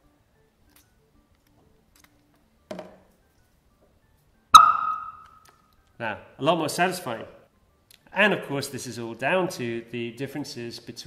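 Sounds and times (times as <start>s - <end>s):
squeaky hydrogen pop: 4.6s - 5.4s.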